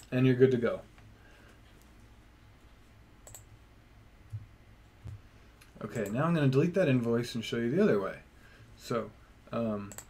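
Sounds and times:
faint low hum: 0.0s - 10.0s
computer mouse click: 3.2s - 3.5s, 6.0s - 6.2s.

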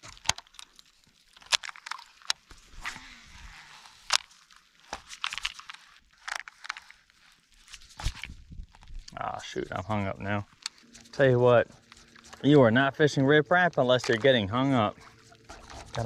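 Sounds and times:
fishing reel clicks and rustles: 0.0s - 16.0s.

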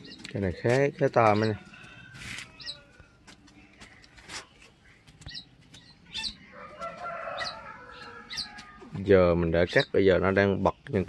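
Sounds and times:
chickens chirping: 0.0s - 11.0s
chicken drawn-out call: 6.2s - 9.0s.

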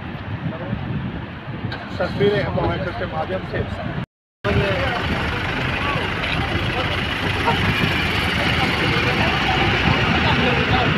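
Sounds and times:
road traffic: 0.0s - 10.9s
indistinct voices: 4.5s - 10.9s
vehicle running close by: 4.5s - 10.9s.

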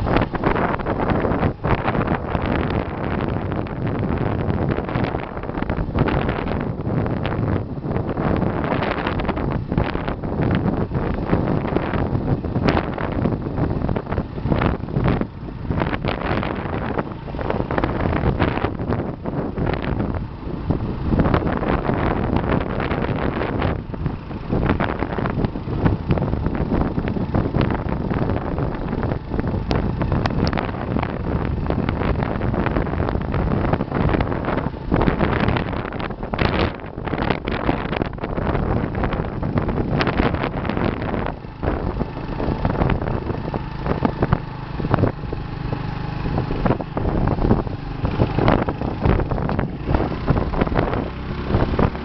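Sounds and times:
motorbike engine running: 0.0s - 52.0s
road noise: 0.0s - 52.0s
wind noise on microphone: 0.0s - 52.0s.

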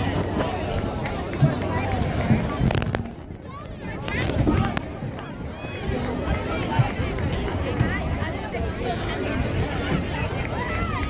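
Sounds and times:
many voices talking and calling: 0.0s - 11.0s.

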